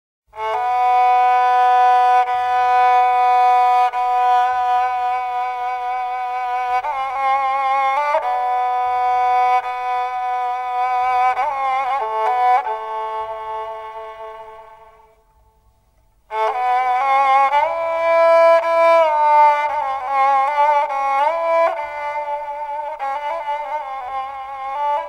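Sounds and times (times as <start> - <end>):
bowed lyra melody: 0.4 - 25.0.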